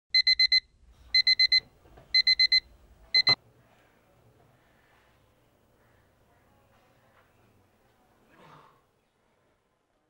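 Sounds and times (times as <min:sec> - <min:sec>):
alarm clock beeping: 0:00.1 - 0:03.4.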